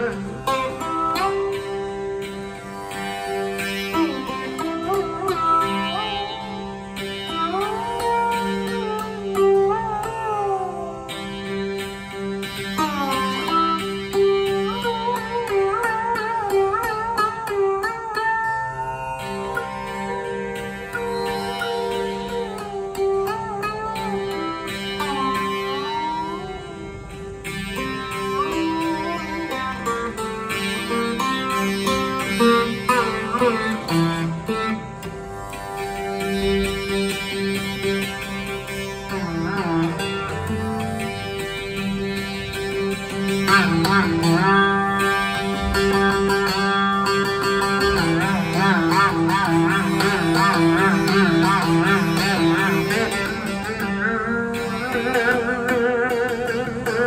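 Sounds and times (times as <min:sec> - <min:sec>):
plucked string instrument melody: 0:00.0 - 0:57.0
tanpura drone: 0:00.0 - 0:57.0.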